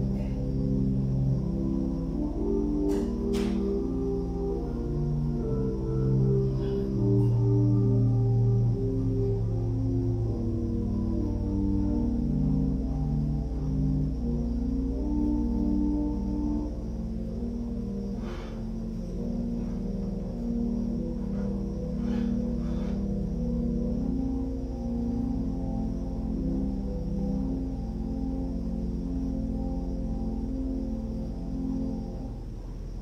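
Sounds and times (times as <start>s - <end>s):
soft slow organ music: 0.0s - 33.0s.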